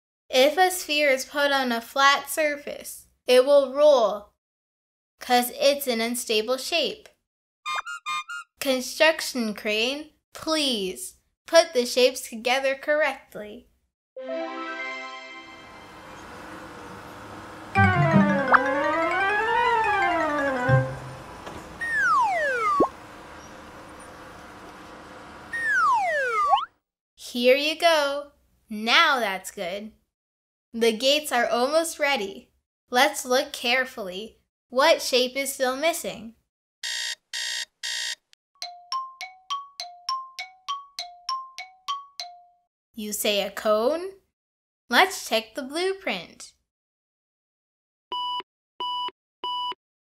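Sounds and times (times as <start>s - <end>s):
falling whistle glides: 7.7s - 8.4s, 21.8s - 22.9s, 25.5s - 26.7s
buzzy electronic beeps: 7.7s - 8.5s
wavering cartoon tone: 7.7s - 8.5s, 17.8s - 21.2s, 21.8s - 22.9s, 25.5s - 26.7s.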